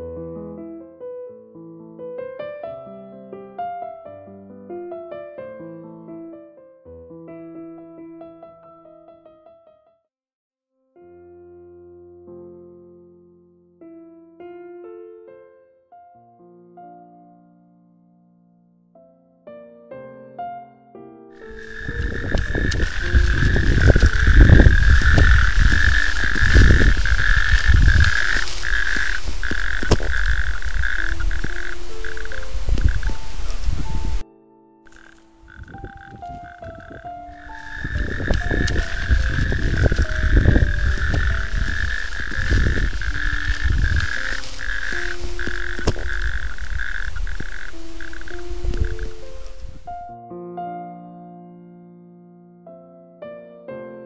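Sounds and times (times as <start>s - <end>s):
soft piano music: 0.0s - 10.1s, 10.8s - 54.0s
chorus of calling frogs: 21.4s - 34.2s, 34.9s - 49.8s.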